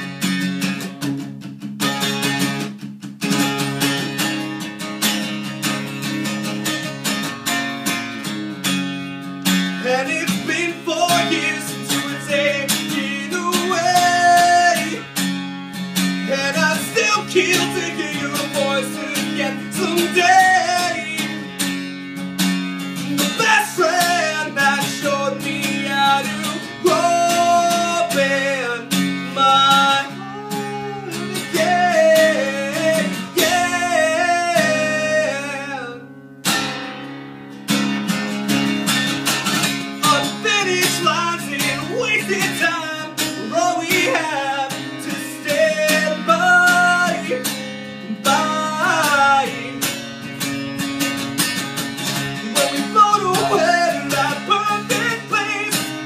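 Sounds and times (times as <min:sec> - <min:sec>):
acoustic guitar strumming: 0:00.0 - 0:56.0
man singing: 0:09.8 - 0:15.2, 0:16.2 - 0:21.8, 0:23.0 - 0:36.1, 0:40.0 - 0:50.2, 0:52.2 - 0:56.0.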